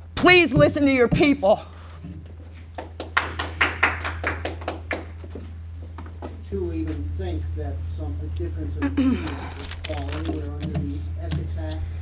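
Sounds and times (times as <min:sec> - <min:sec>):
people clapping: 0:02.7 - 0:05.4.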